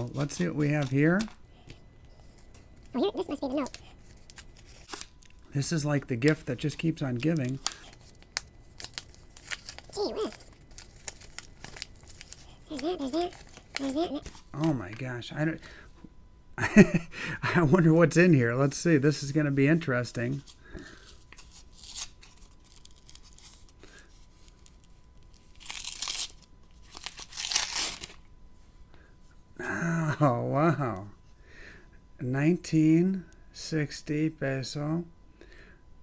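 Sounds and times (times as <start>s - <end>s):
paper crinkling and tearing: 2.2s - 5.4s, 7.1s - 15.0s, 20.3s - 28.2s.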